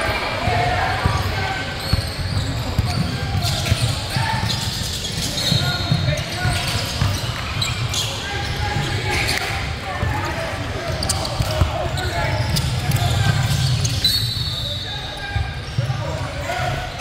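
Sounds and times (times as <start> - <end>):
voices of players and spectators: 0.0 - 17.0.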